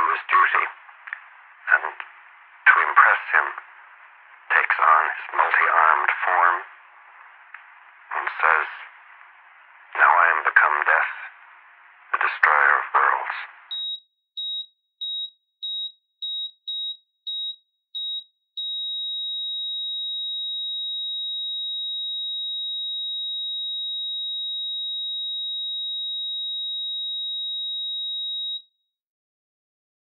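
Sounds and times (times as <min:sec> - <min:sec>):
long unbroken flatline tone: 0:00.0 - 0:13.8
heart monitor beeping: 0:13.6 - 0:23.3, 0:27.6 - 0:28.7.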